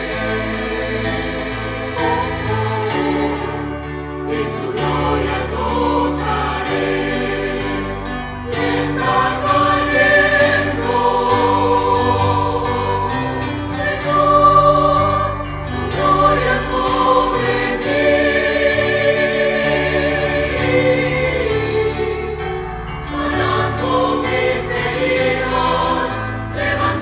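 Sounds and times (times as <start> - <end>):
choir singing held chords: 0.0 - 27.0.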